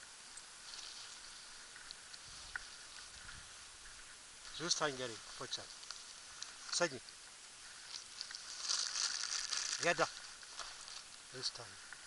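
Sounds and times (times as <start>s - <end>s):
soft rustling: 0.6s - 12.0s
footsteps on paving: 8.4s - 11.1s.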